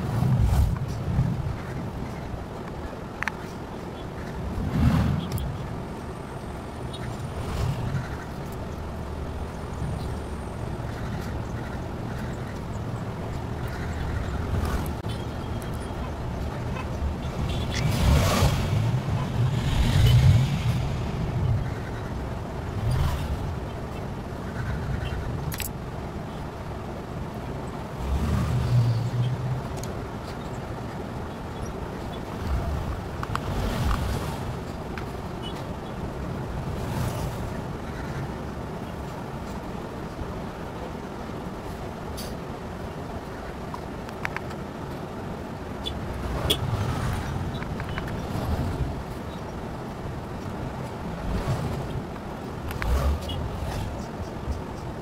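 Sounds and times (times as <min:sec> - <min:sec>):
low rumbling background noise: 0:00.0 - 0:55.0
faint clicks: 0:43.7 - 0:45.0.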